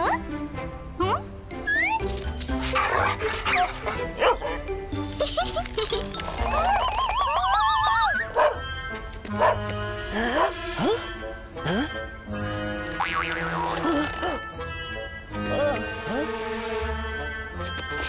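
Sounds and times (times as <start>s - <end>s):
playful cartoon music: 0.0s - 18.0s.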